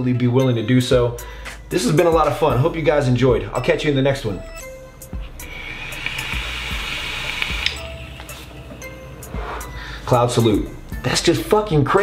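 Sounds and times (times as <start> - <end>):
vape coil hissing: 5.4 - 7.9.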